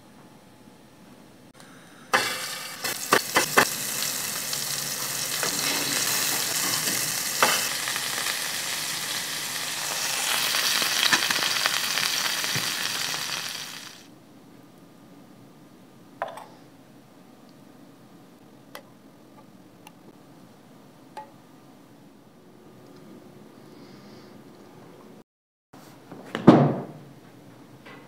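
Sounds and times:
sharp pops of frying: 0:02.1 - 0:14.1
meatballs sizzling in a frying pan: 0:02.2 - 0:14.1.

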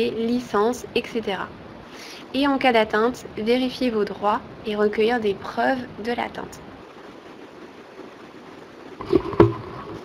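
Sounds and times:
audio line hiss: 0:00.0 - 0:10.0.

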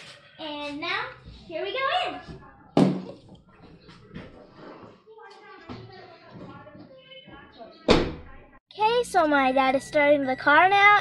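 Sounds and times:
loud thump: 0:07.9 - 0:08.3.

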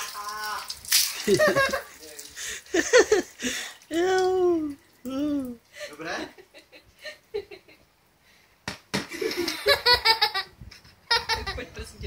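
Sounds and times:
girl laughing: 0:01.2 - 0:01.9, 0:09.1 - 0:11.6.

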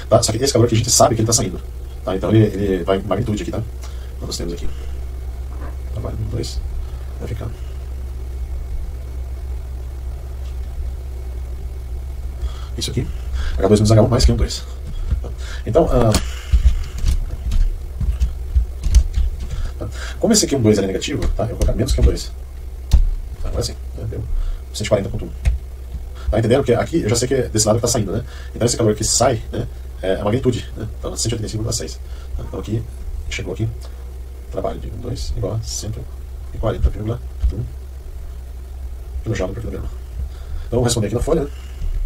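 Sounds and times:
steady low hum: 0:00.0 - 0:42.0
steady low rumble: 0:00.0 - 0:42.0
man's voice: 0:12.7 - 0:16.4.

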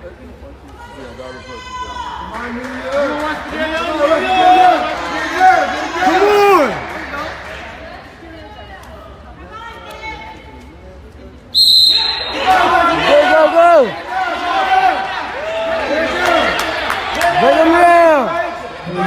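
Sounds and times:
spectators shouting and yelling: 0:00.7 - 0:07.9, 0:11.9 - 0:19.0
referee's whistle blowing: 0:11.5 - 0:12.6.

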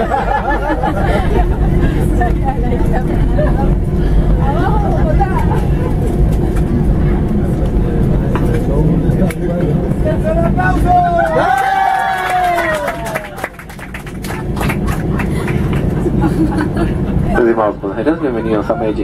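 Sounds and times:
airliner cabin rumble: 0:00.0 - 0:19.0
passengers chattering: 0:00.0 - 0:19.0.

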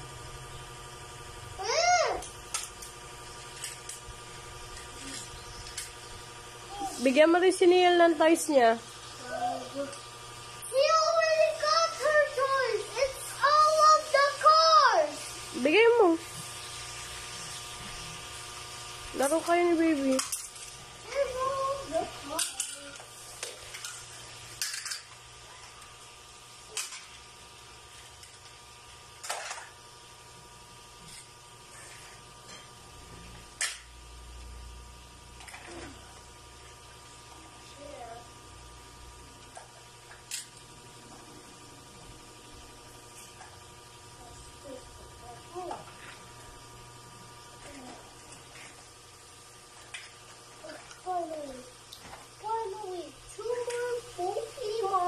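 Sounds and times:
faint steady hum: 0:00.0 - 0:55.0
child calling out: 0:01.6 - 0:02.2, 0:10.7 - 0:15.2, 0:21.1 - 0:22.2
plastic toys clattering on tiles: 0:20.0 - 0:20.8, 0:22.3 - 0:25.1, 0:29.2 - 0:29.7.

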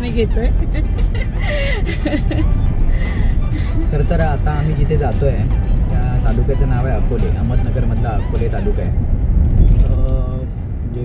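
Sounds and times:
car cabin road noise: 0:00.0 - 0:11.0.

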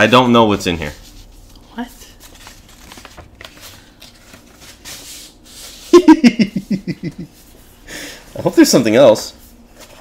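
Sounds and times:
paper rustling and sliding: 0:00.9 - 0:06.0, 0:09.3 - 0:10.0.

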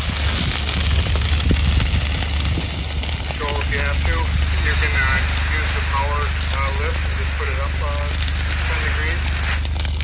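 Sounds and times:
grass fire crackling: 0:00.0 - 0:10.0
wind rumble on microphone: 0:00.0 - 0:10.0
person talking: 0:03.4 - 0:09.6.

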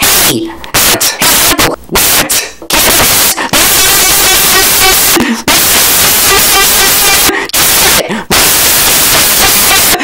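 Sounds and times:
distorted cartoon voice: 0:00.0 - 0:10.0.

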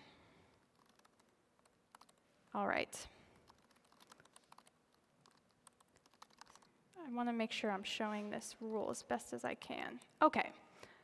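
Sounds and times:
typing on computer keyboard: 0:00.5 - 0:02.2, 0:03.4 - 0:06.7.

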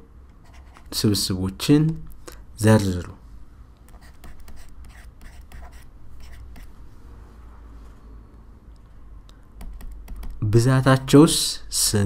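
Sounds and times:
stylus tapping on tablet: 0:09.6 - 0:10.4.

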